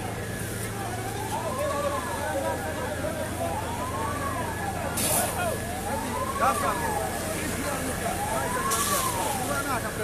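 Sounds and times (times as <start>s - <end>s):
emergency siren wailing: 0.0s - 10.0s.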